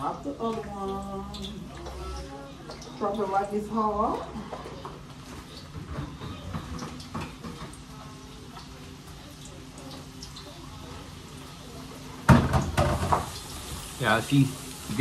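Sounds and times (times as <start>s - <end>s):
faint kitchen knocks and clatter: 0.4s - 9.2s, 12.2s - 13.9s.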